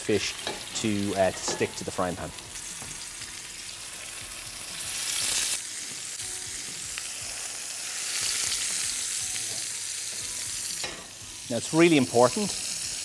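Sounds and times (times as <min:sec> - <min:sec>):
fish frying in hot oil: 0:00.0 - 0:13.0.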